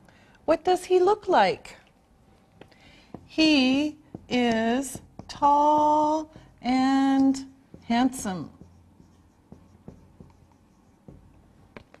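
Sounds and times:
marker writing on whiteboard: 2.4 - 12.0.

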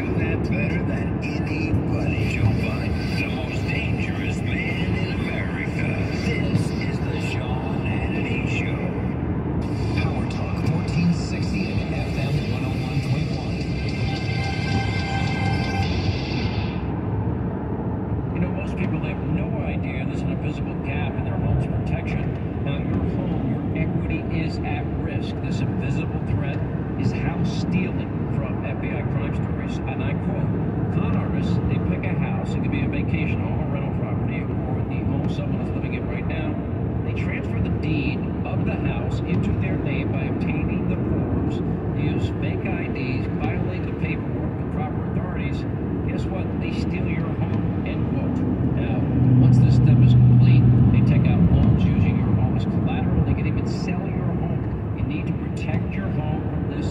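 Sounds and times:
car road and engine noise: 0.0 - 56.9.

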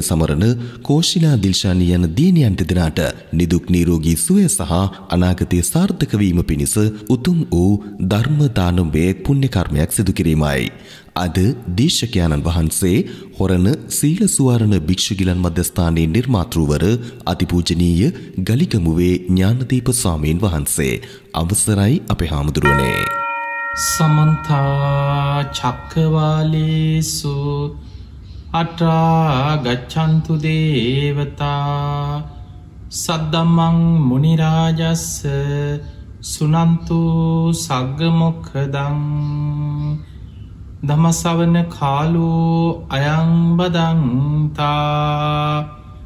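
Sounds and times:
man chanting: 23.8 - 27.8, 28.5 - 40.0, 40.8 - 46.0.

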